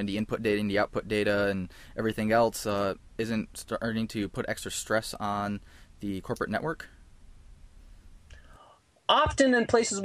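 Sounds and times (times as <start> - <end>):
faint steady hiss: 0.0 - 10.0
soft breath-like sound: 5.6 - 6.0, 7.8 - 8.9.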